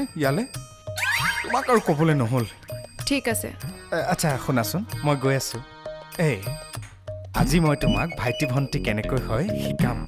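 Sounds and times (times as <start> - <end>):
comic springy background music: 0.2 - 10.0.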